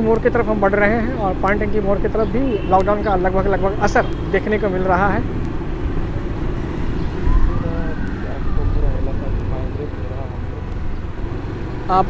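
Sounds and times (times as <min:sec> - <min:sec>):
vehicle rumble on road: 0:00.0 - 0:12.0.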